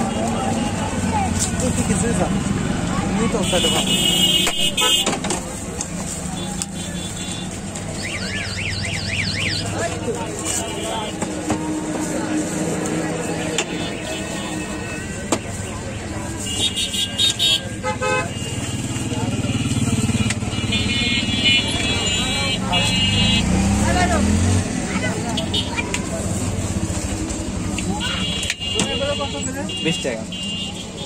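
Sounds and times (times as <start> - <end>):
car horns tooting: 3.2 - 5.5, 6.2 - 11.8, 13.2 - 24.2, 27.8 - 31.0
vehicle engine passing: 22.9 - 28.0.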